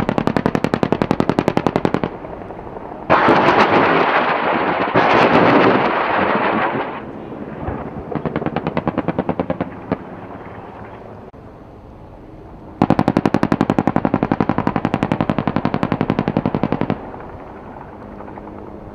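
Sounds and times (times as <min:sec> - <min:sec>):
automatic machine-gun fire: 0:00.0 - 0:02.1, 0:03.1 - 0:07.0, 0:08.1 - 0:10.0, 0:12.8 - 0:17.2.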